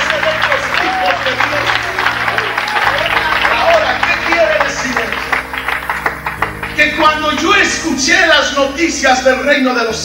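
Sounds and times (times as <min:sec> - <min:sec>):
congregation clapping and calling out: 0:00.0 - 0:08.4.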